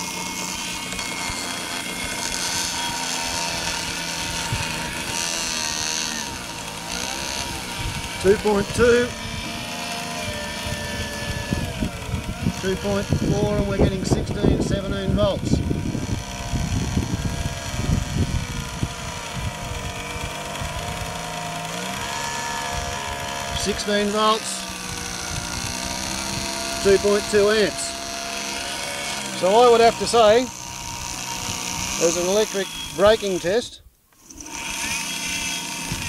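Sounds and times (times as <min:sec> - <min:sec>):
electric motor whine: 0:00.0 - 0:36.0.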